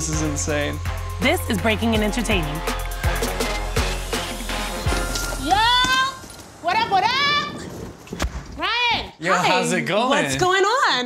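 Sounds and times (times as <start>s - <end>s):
woman whooping shouts: 5.4s - 6.2s.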